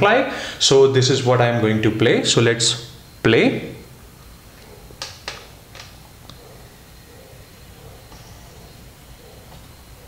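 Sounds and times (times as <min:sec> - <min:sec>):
faint electronic whine: 0:00.0 - 0:10.0.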